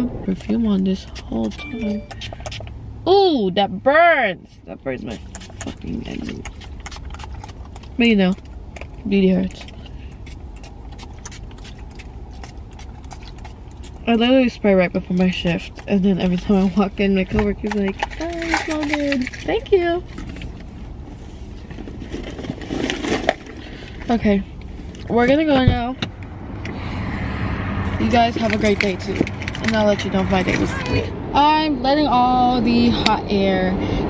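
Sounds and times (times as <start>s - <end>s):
car idling: 0.0s - 34.0s.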